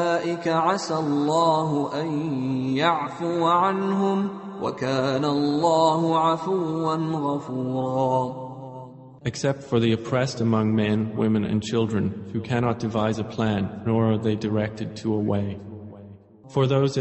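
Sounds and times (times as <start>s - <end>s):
person chanting a recitation: 0.0s - 15.8s, 16.5s - 17.0s.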